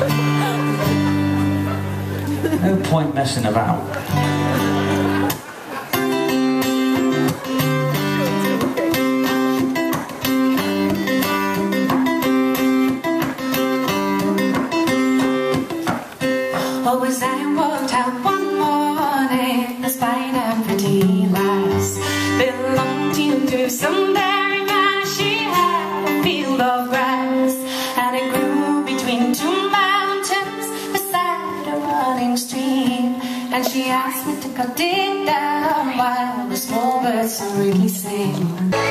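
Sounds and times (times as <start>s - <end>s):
acoustic guitar: 0.0s - 38.9s
woman singing: 16.5s - 38.9s.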